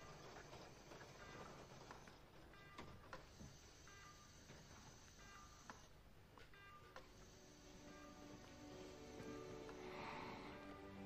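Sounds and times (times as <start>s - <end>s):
faint electronic beeps: 0.0s - 11.0s.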